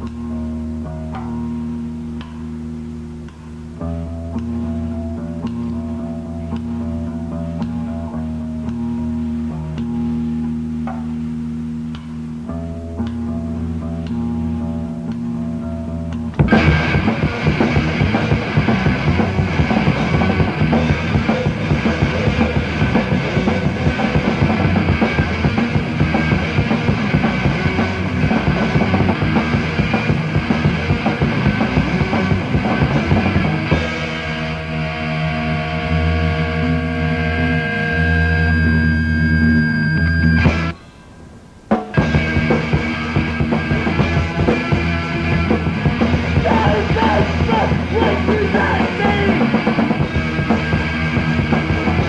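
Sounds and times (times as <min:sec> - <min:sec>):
rock band playing: 0:00.0 - 0:40.8, 0:41.6 - 0:52.0.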